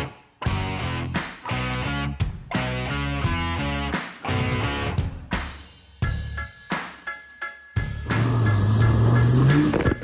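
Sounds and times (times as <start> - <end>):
background music: 0.0 - 10.0
vehicle engine revving: 8.1 - 10.0.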